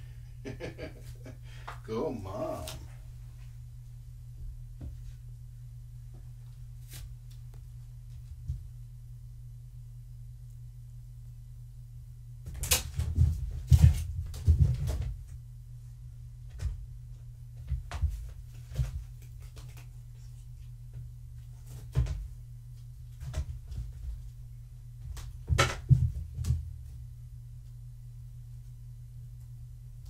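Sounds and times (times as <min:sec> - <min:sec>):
steady low hum: 0:00.0 - 0:30.0
irregular knocks and bumps: 0:12.9 - 0:15.3, 0:25.0 - 0:26.9.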